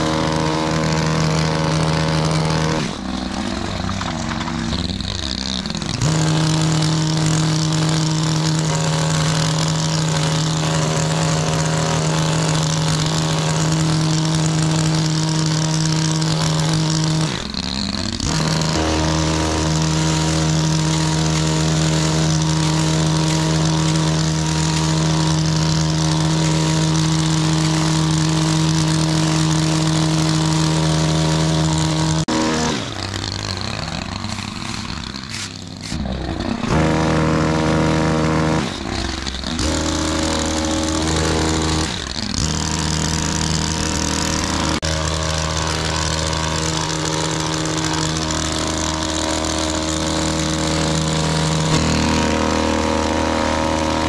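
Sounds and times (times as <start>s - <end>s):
blades cutting hedge: 0.0s - 54.0s
hedge trimmer engine running: 0.0s - 54.0s.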